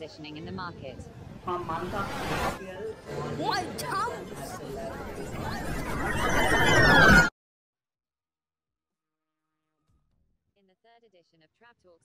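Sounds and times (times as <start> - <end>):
garbled pitch-shifted voice: 1.5 - 7.3
upward-gliding squeaks: 5.1 - 7.3.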